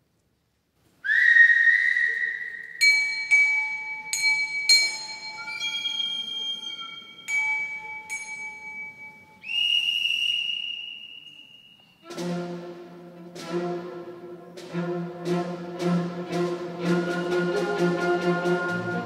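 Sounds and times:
higher whistle blast: 1.0s - 2.9s, 5.4s - 7.3s, 9.4s - 12.0s
whistle blown: 1.0s - 3.0s, 5.4s - 7.4s, 9.4s - 12.0s
bell struck ringing: 2.8s - 9.4s.

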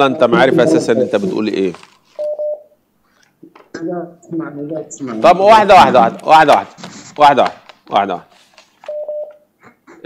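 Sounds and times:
man speaking: 0.0s - 1.9s, 5.2s - 8.3s
telephone beep: 2.2s - 2.7s, 8.9s - 9.4s.

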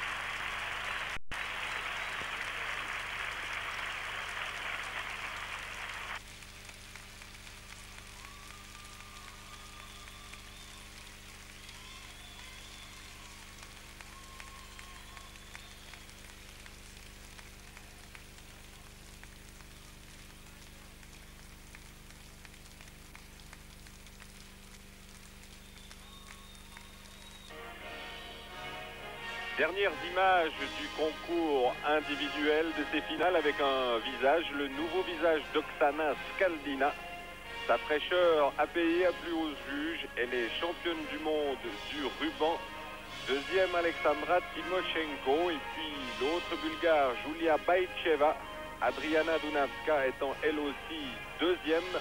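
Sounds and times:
crowd applauding: 0.0s - 52.0s
faint music: 25.2s - 52.0s.

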